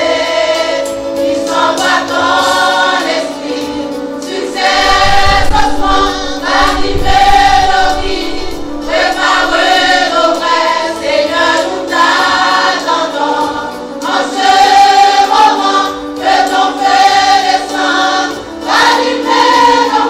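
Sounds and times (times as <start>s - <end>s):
choir singing gospel in harmony: 0.0s - 20.0s.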